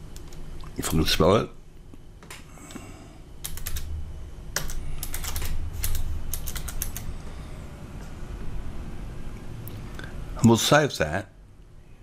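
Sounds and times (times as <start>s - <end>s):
computer keyboard typing: 3.4s - 3.9s, 4.5s - 7.1s.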